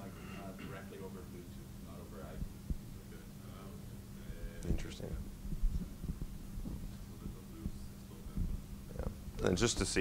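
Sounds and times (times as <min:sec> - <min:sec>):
low electrical hum: 0:00.0 - 0:10.0
microphone handling thumps: 0:04.7 - 0:09.9.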